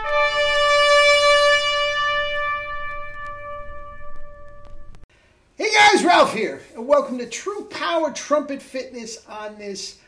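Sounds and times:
trumpet holding high note: 0.0 - 5.0.

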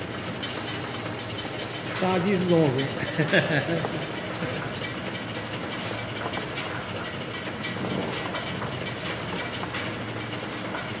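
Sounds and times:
machine clattering: 0.4 - 11.0.

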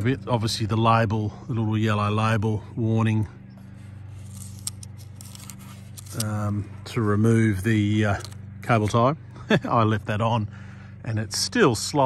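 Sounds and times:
steady low hum: 0.0 - 12.0
plastic tag clicking and scratching: 4.1 - 6.5, 8.1 - 8.9.

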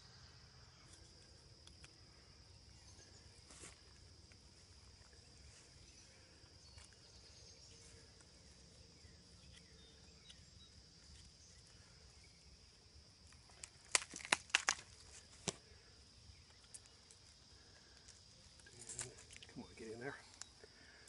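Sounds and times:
insects chirring: 0.0 - 21.0
sharp clicks and snaps: 1.6 - 2.0, 13.2 - 15.6.

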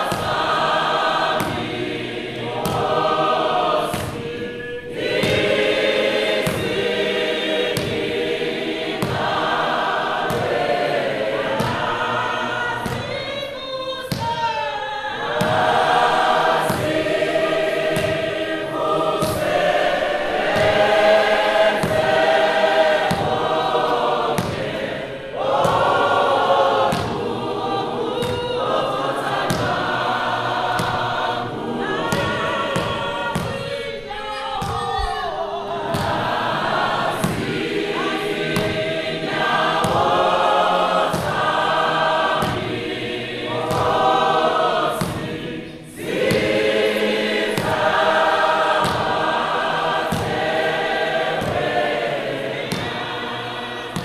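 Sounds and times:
congregation and choir singing hymn: 0.0 - 54.0.

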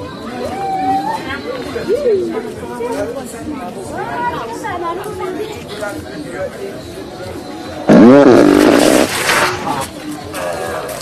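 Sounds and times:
people talking: 0.0 - 11.0
street background noise: 0.0 - 11.0.

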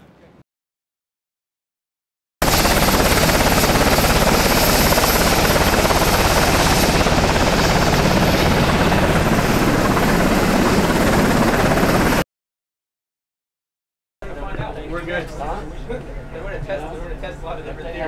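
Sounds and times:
helicopter engine noise: 2.4 - 12.2
helicopter rotor beating: 2.4 - 12.2.

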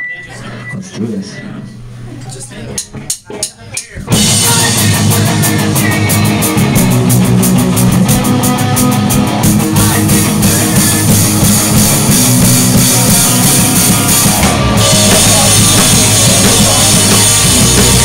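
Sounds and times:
live rock band playing: 3.5 - 18.0.

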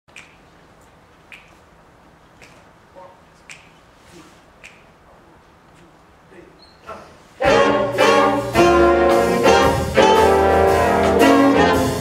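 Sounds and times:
finger snaps: 0.1 - 0.5, 1.3 - 1.6, 2.4 - 2.7, 3.4 - 3.8, 4.6 - 5.0.

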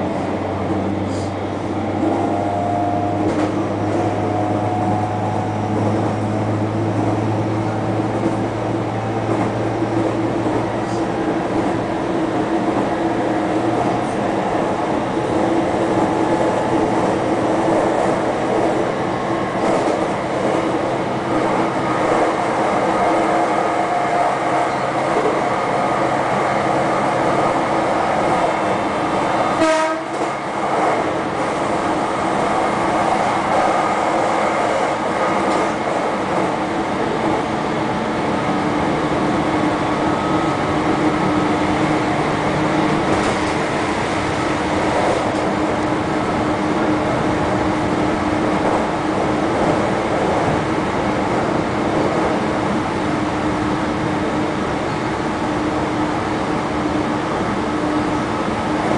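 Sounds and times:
train wheels rumbling on rail: 0.0 - 58.9
train motor tone: 1.0 - 10.0, 28.7 - 30.4.

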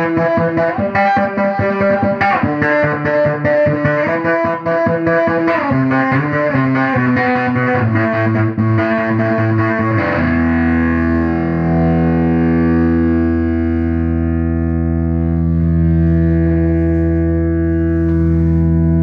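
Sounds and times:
fuzzed electric guitar: 0.0 - 19.0.

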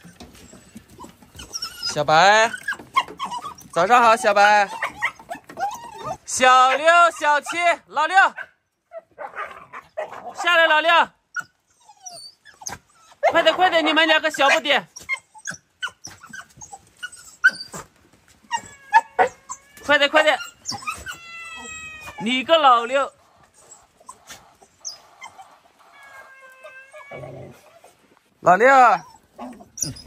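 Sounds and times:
dog whining: 0.0 - 7.6, 11.3 - 28.0, 28.9 - 30.0
puppy whimpering: 0.0 - 7.7, 11.3 - 28.0, 28.8 - 30.0.

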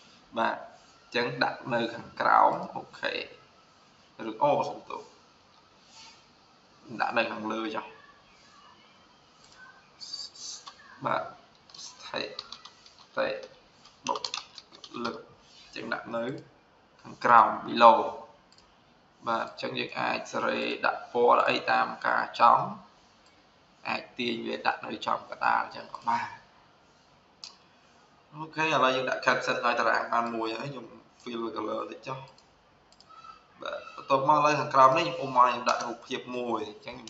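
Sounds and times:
computer keyboard typing: 11.5 - 15.2, 35.5 - 36.1.

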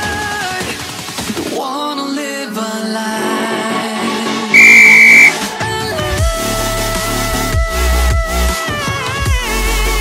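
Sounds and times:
electronic music: 4.6 - 5.4
high timer beep: 4.6 - 5.4.

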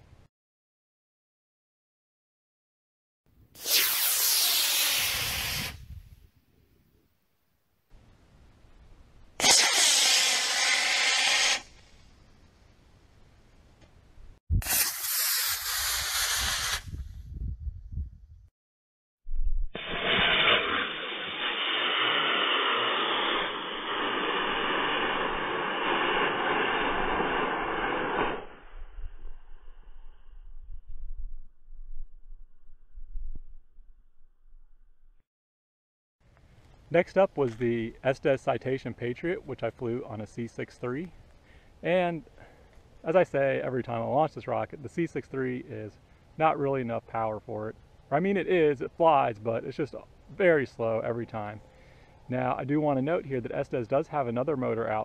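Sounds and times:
model rocket motor rushing hiss: 3.6 - 5.8, 9.4 - 11.8, 14.6 - 17.0, 19.8 - 28.7
sharp crack: 3.6 - 5.8, 9.4 - 12.1, 14.6 - 16.9, 19.8 - 28.6.

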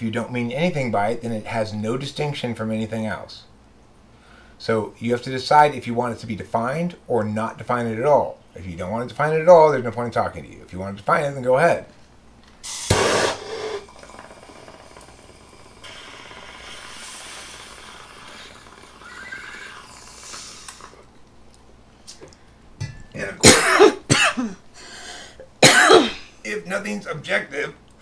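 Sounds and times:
person coughing: 23.4 - 24.6, 25.6 - 26.3.

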